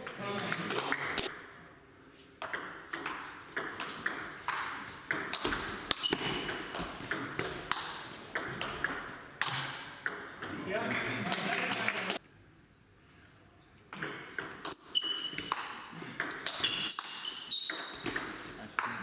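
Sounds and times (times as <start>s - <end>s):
table tennis ball hits: 2.4s - 10.6s, 13.9s - 19.0s.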